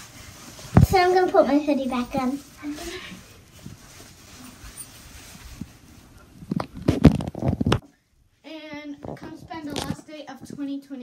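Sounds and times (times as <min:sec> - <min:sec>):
fabric rustling: 0:00.0 - 0:07.8.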